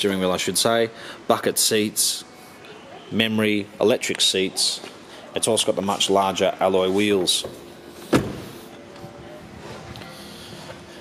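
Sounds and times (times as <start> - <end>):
car door thump: 8.1 - 8.5.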